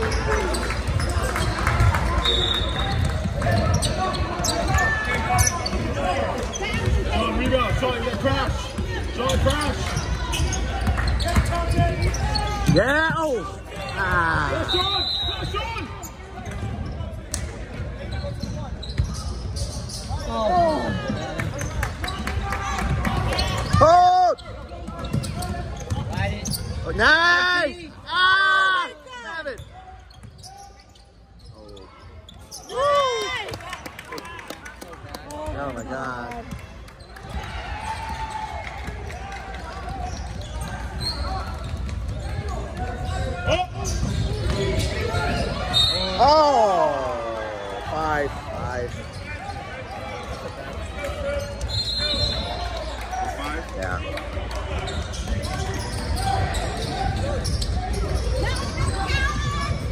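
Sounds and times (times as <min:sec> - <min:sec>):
sneakers squeaking on court: 0:00.0 - 0:23.8, 0:24.4 - 0:27.0, 0:29.5 - 0:32.8, 0:38.0 - 0:46.2, 0:48.6 - 0:53.6, 0:54.3 - 0:59.9.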